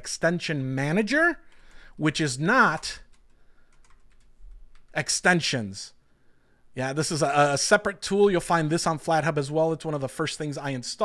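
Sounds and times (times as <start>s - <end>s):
keyboard typing: 2.6s - 5.0s.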